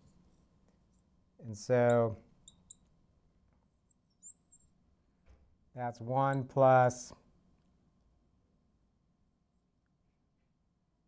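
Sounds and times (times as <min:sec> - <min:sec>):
marker squeaking on glass: 0:01.8 - 0:02.9, 0:03.7 - 0:04.7.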